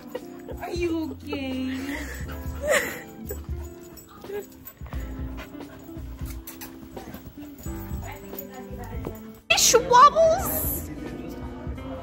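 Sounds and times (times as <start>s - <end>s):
background music: 0.0s - 12.0s
dog noises: 1.9s - 9.1s.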